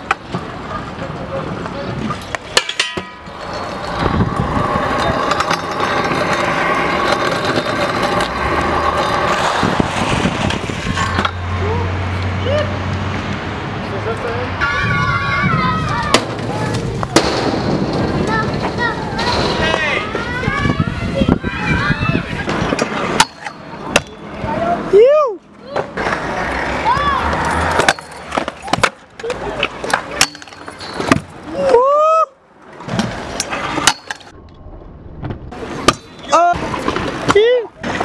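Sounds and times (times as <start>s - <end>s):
wheels rolling on metal: 0.0s - 12.2s, 14.1s - 31.8s, 32.6s - 38.0s
scooter banging on metal obstacle: 2.2s - 11.4s, 22.5s - 24.2s, 27.6s - 29.0s, 29.9s - 31.5s, 32.9s - 34.3s.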